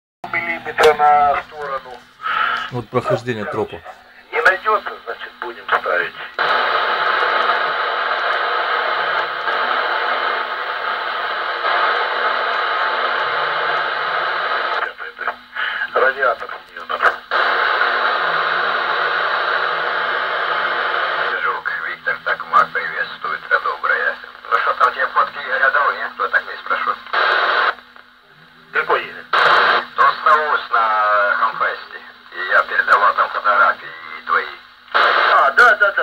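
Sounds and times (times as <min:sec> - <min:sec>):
radio squelch hiss: 0:00.2 - 0:36.0
thin voices over radio: 0:00.2 - 0:36.0.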